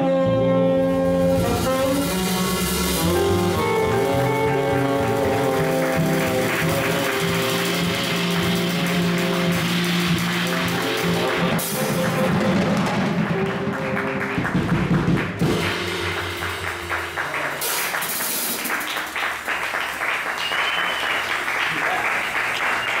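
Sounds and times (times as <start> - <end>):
jazz band playing: 0.0 - 21.6
cymbal and drum flourish: 0.8 - 21.5
audience applause: 2.6 - 23.0.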